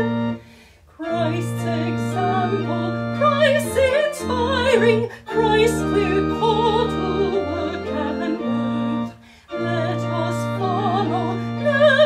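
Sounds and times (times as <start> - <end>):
organ: 0.0 - 12.0
person singing a hymn: 0.0 - 12.0.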